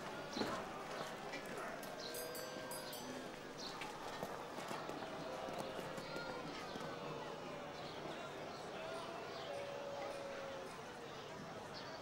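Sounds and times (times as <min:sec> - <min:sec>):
murmur of distant voices: 0:00.0 - 0:12.0.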